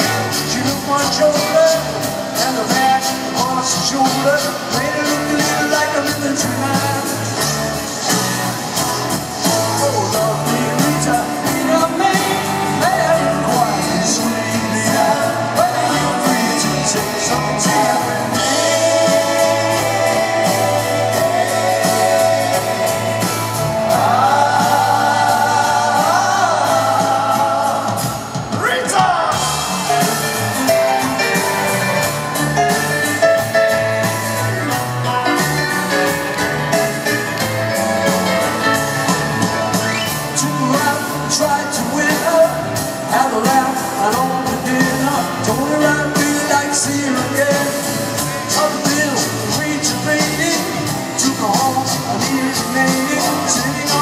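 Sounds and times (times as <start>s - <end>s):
man singing: 0.0s - 30.1s, 40.0s - 54.0s
live rock band: 0.0s - 54.0s.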